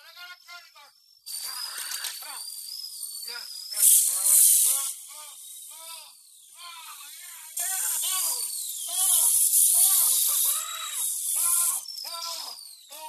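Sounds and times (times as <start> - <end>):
dental drill whine: 0.0 - 13.0.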